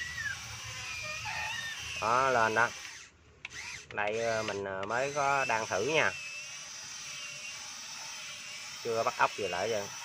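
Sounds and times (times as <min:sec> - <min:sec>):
small electric motor whirring: 0:00.0 - 0:10.0.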